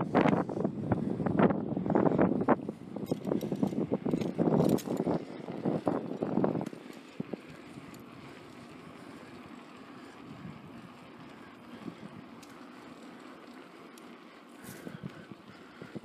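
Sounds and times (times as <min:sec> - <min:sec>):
wind buffeting microphone: 0:00.0 - 0:12.4, 0:14.6 - 0:16.0
outdoor wind noise: 0:00.0 - 0:16.0.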